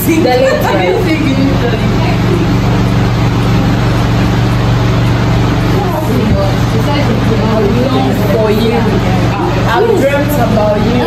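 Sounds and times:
faint voices: 0.0 - 11.0
low machine hum: 0.0 - 11.0.

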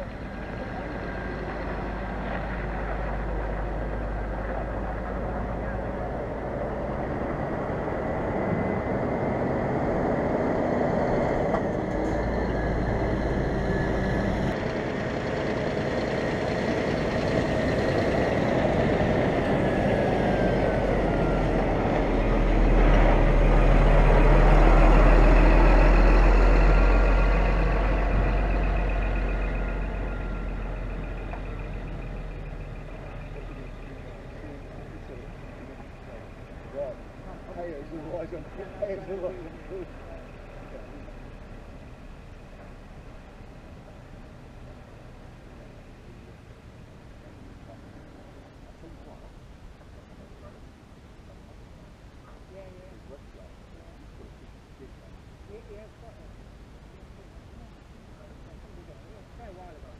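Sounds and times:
lorry diesel engine reversing: 0.0 - 46.2.

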